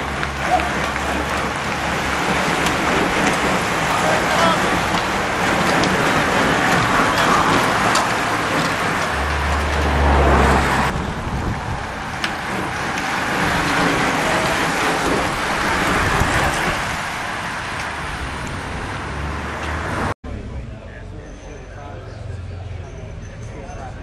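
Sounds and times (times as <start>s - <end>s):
tyres rushing on wet road: 0.0s - 21.2s.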